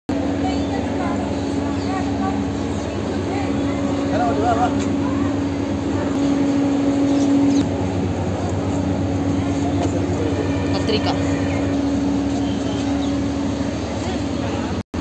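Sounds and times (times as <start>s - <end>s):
machine hum: 0.1s - 15.0s
murmur of people talking: 0.1s - 15.0s.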